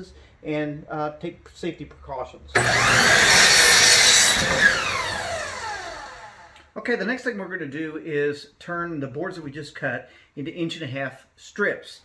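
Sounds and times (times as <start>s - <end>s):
miter saw cutting wood: 2.6s - 6.6s
saw motor whine spinning down: 2.6s - 6.6s.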